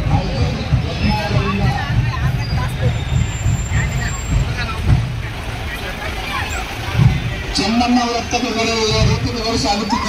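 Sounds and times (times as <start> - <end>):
people talking: 0.0 - 10.0
truck engines rumbling: 0.0 - 10.0.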